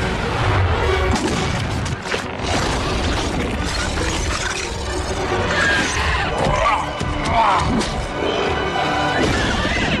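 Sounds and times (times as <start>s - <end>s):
film score: 0.0s - 10.0s.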